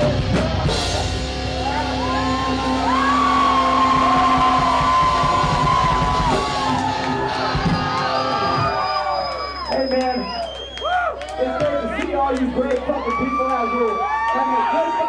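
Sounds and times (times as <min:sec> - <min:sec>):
live heavy metal band: 0:00.0 - 0:09.1
crowd yelling and cheering: 0:00.0 - 0:15.0.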